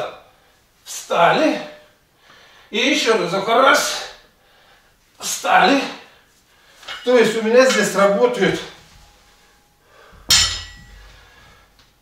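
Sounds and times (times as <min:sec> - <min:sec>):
barbell clanking onto rubber mats: 0:10.2 - 0:11.2.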